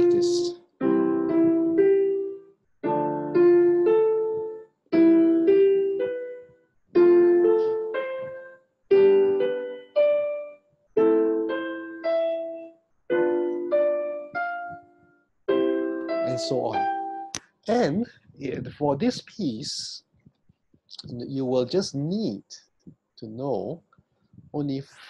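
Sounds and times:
piano chords and arpeggios: 0.0 - 18.0.

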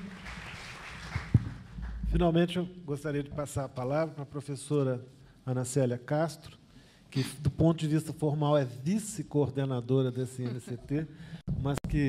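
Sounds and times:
microphone knock: 1.2 - 2.2
low microphone handling rumble: 11.5 - 12.0.

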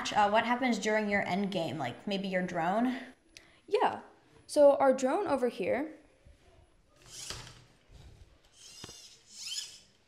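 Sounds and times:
high-pitched squeaky rustles: 7.0 - 10.0.

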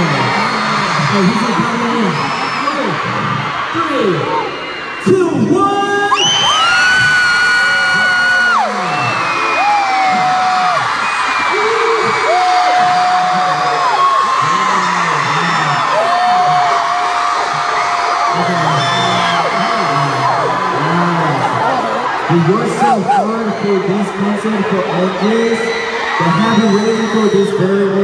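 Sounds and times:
crowd screaming and cheering: 0.0 - 28.0
long high screams: 6.1 - 20.7.

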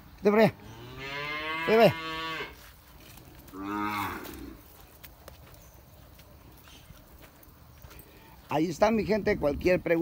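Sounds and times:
cow mooing: 0.6 - 2.6, 3.5 - 4.6.

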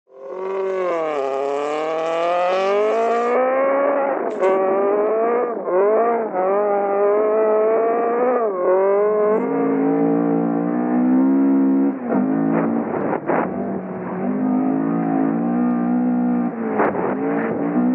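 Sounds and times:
rally car engine at full throttle: 0.1 - 17.9
short sharp crack: 16.7 - 17.6.

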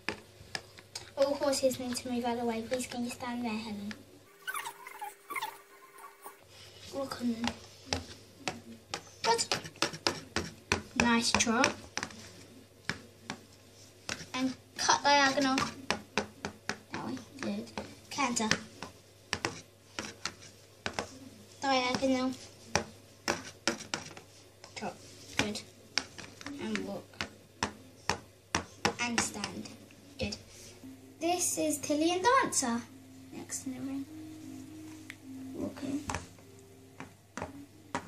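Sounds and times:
child's voice: 1.2 - 4.0, 6.9 - 7.6, 14.4 - 15.8, 16.9 - 18.7, 21.6 - 22.4, 26.5 - 27.1, 29.0 - 30.4, 31.2 - 34.1.

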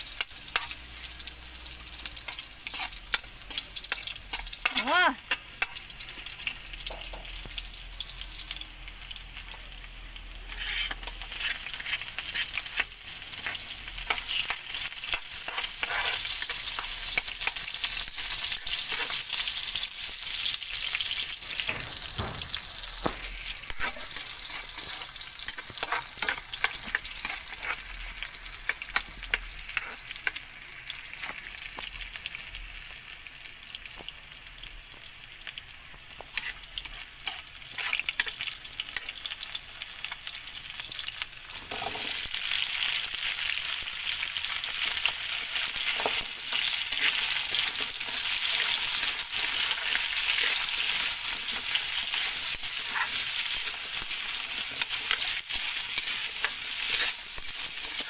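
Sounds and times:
garlic sizzling in oil: 0.0 - 58.0
metal spatula scraping wok: 2.2 - 5.8, 10.4 - 28.0, 36.3 - 39.2, 41.5 - 42.3, 44.7 - 58.0.

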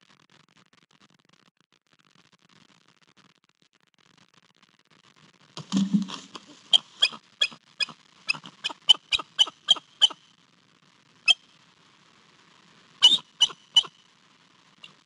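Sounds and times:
eagle sharp high chirps: 6.6 - 10.2, 13.0 - 13.9.

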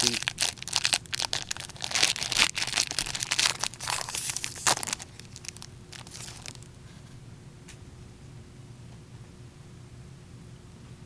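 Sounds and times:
foil wrapper crinkling and tearing: 0.0 - 6.7.

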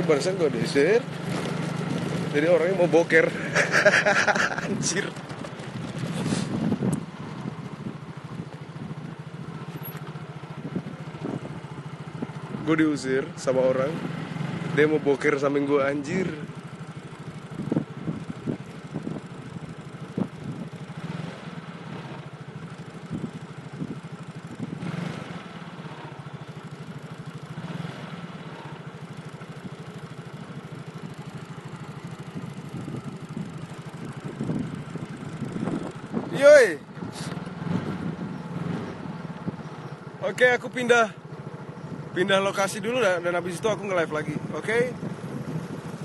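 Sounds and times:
small engine running: 0.0 - 46.0.

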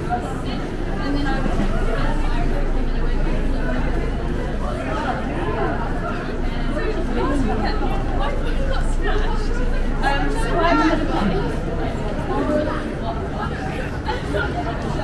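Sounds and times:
chatter of passers-by: 0.0 - 15.0.

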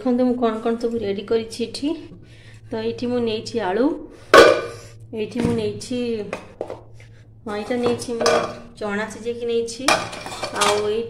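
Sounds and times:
metal pot lids clanking: 4.4 - 4.8, 7.5 - 8.7, 9.9 - 11.0.

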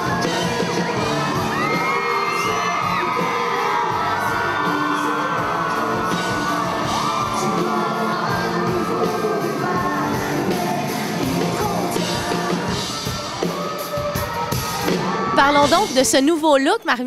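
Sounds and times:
woman singing: 0.0 - 13.2, 15.4 - 17.0
audience cheering and screaming: 0.0 - 16.0
live pop-rock band: 0.0 - 16.2.

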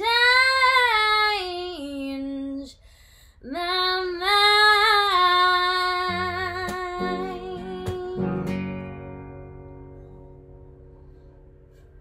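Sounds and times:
strummed acoustic guitar chords: 6.1 - 12.0.

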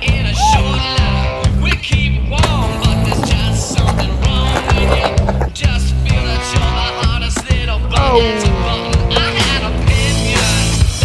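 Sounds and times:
rock music: 0.0 - 11.0
skateboard wheels rolling on concrete: 0.2 - 8.0, 8.7 - 11.0
skateboard hitting ground: 1.7 - 5.7.

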